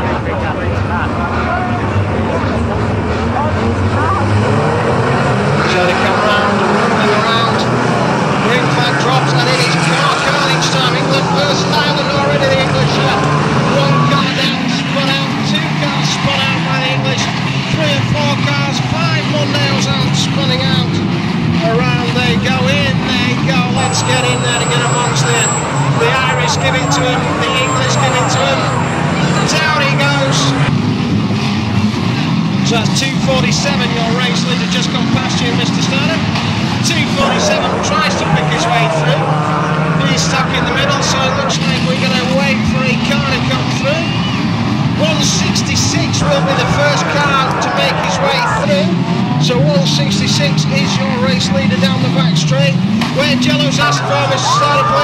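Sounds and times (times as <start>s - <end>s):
voices: 0.0s - 30.8s, 32.6s - 55.0s
car engines revving: 0.0s - 55.0s.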